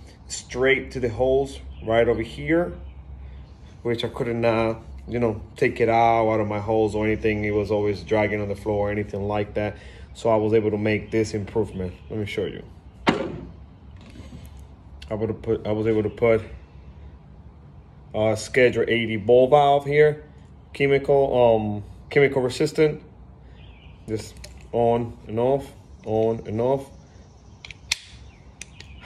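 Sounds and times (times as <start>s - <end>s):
sharp knock: 13.0s - 13.5s.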